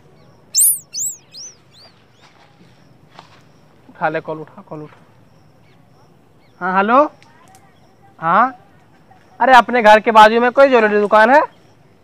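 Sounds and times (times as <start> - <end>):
high bird-like chirps: 0.6 - 1.6.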